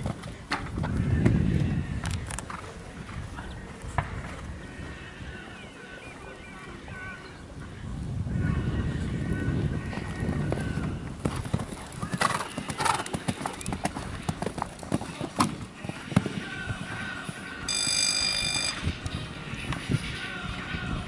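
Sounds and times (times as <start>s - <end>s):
horse hooves on sand: 9.7s - 17.6s
electronic beep: 17.7s - 18.9s.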